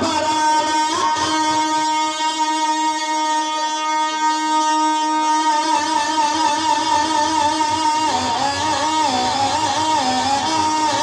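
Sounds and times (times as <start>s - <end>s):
man singing a long note: 0.0s - 11.0s.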